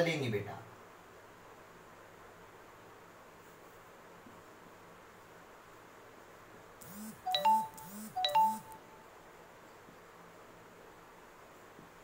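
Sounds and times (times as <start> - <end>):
faint room hiss: 0.0 - 12.0
short electronic jingle: 6.8 - 9.0.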